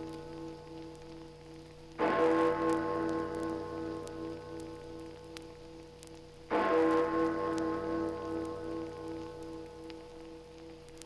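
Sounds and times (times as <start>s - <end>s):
record crackle: 0.0s - 11.0s.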